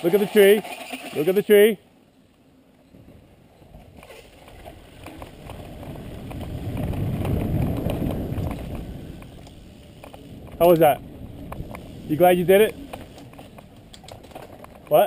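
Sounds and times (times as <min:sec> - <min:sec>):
wind buffeting microphone: 0:02.8 - 0:15.0
bike tyre rumble on dirt: 0:03.1 - 0:15.0
small rattles: 0:11.5 - 0:15.0.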